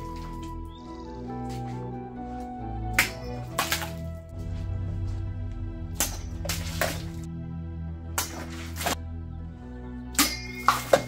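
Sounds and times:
background music steady tones: 0.0 - 11.0
sword slicing plastic bottle: 8.2 - 9.0, 10.2 - 11.0.

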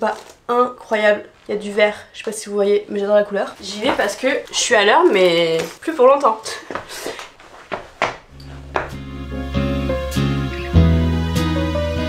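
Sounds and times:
footsteps on wooden floor: 3.6 - 4.5, 6.6 - 9.1.

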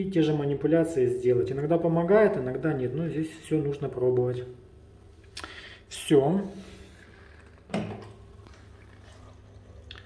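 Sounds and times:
water in pipes: 5.2 - 10.0.

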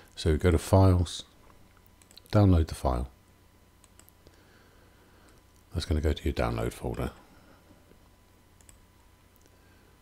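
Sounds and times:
faint steady hum: 0.0 - 10.0
computer mouse clicks: 1.8 - 2.3, 3.8 - 4.3, 8.6 - 9.6.

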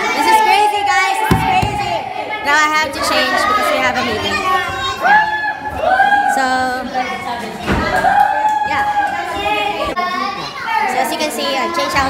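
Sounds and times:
young people talking and calling out: 0.0 - 12.0.

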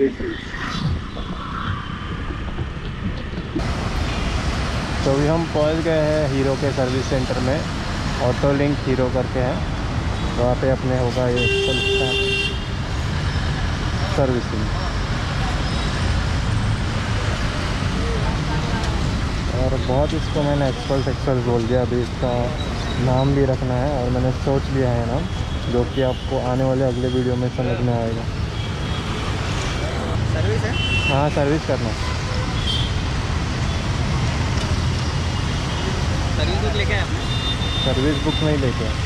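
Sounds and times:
street traffic rumble: 0.0 - 39.0.

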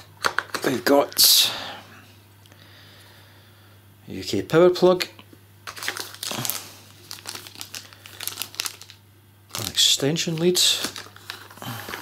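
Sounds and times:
plastic wrapping crinkling: 5.6 - 12.0.

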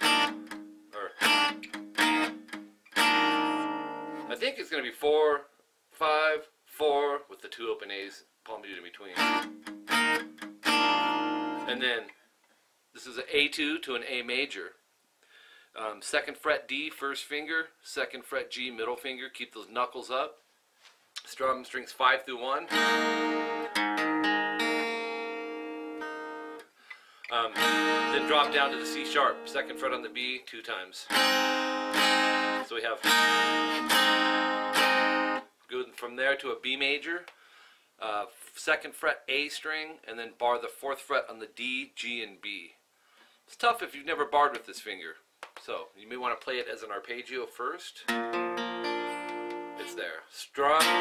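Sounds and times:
acoustic guitar strums: 0.0 - 4.4, 9.2 - 12.1, 22.6 - 30.3, 31.1 - 35.5, 48.1 - 50.0, 50.7 - 51.0.

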